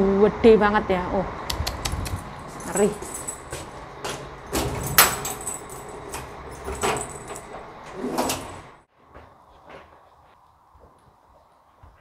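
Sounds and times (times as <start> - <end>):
keys jangling: 2.1 - 8.7
metallic lock clicks: 4.5 - 8.6.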